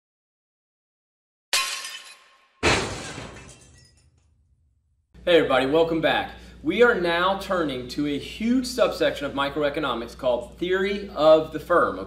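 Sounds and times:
glass shattering crash: 1.5 - 4.3.

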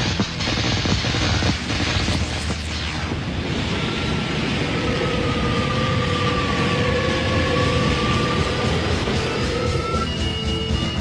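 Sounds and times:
dense rushing roar: 0.0 - 11.0.

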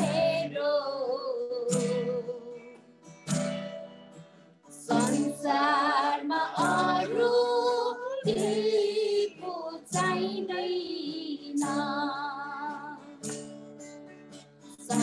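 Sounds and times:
person singing with vibrato: 0.0 - 2.8, 4.7 - 13.3, 14.8 - 15.0
acoustic guitar chords: 0.0 - 15.0.

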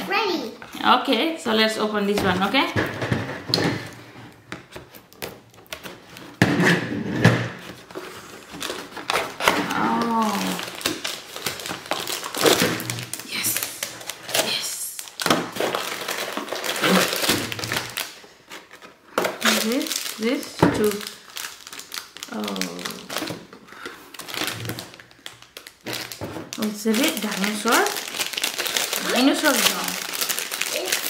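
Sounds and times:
packaging rustling and crinkling: 3.7 - 6.4, 7.4 - 31.0.

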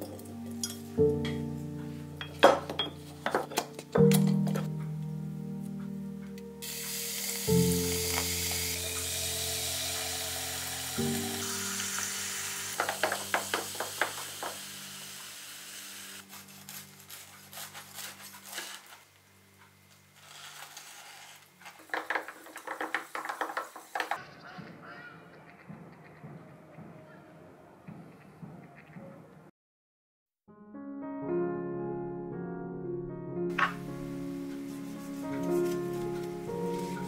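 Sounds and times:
background music: 0.0 - 18.6, 30.5 - 37.0
soda fizzing in a glass: 6.6 - 15.3.

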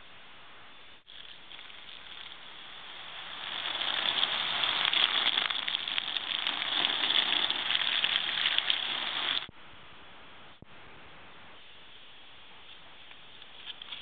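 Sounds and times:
hose spraying onto cardboard: 1.1 - 9.5.

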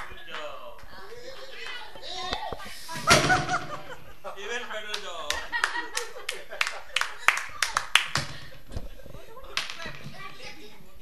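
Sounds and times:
small group applauding: 0.0 - 1.9, 4.9 - 8.5, 9.5 - 10.0
people talking and laughing: 0.0 - 11.0.

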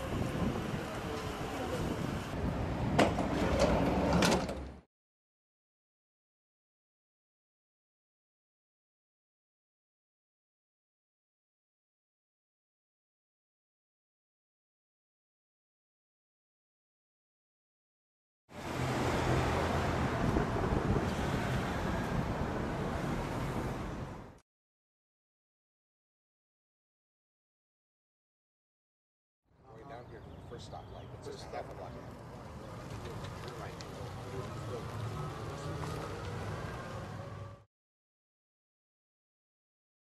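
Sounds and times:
wind buffeting microphone: 0.0 - 3.0, 19.9 - 24.0
tyre and surrounding noise: 0.0 - 4.8, 29.6 - 37.6.

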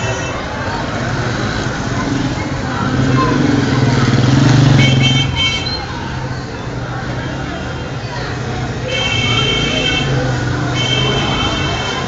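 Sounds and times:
vehicle engine passing: 0.8 - 5.4.

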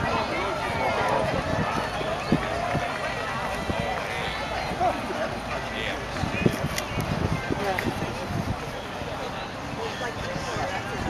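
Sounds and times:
people chatting: 0.0 - 11.0.

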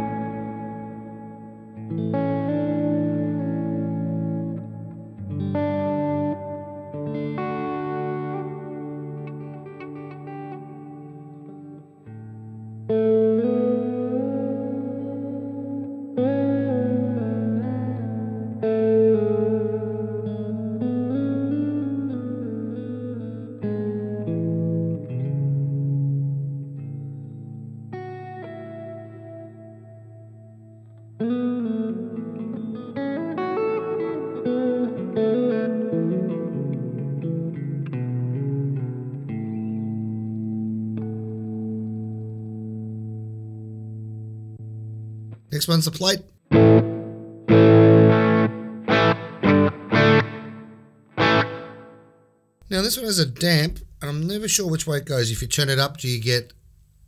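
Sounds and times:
clean electric guitar with reverb: 0.0 - 54.0.

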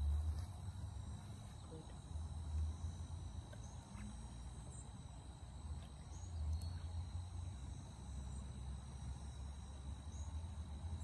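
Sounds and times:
insects trilling: 0.0 - 11.0.

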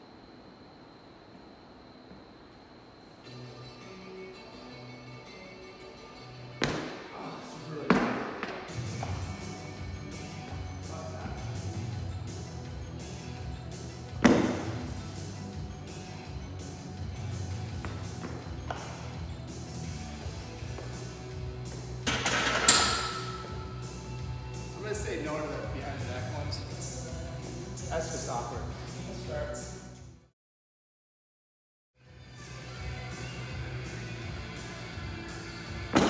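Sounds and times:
background music: 3.2 - 30.2, 32.0 - 36.0.

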